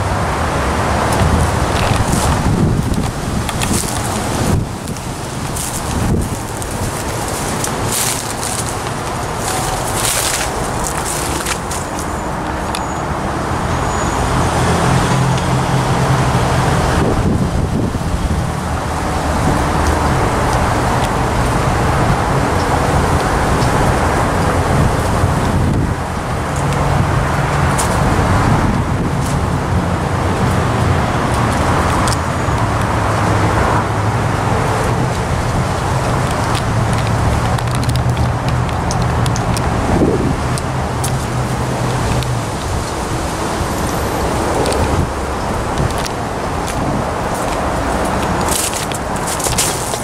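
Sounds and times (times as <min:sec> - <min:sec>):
road traffic: 0:00.0 - 0:50.0.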